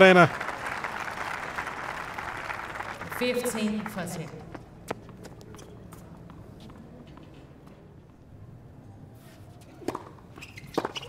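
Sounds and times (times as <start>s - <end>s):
low stadium background noise: 0.0s - 11.0s
taps and footsteps on hard court: 4.5s - 7.4s.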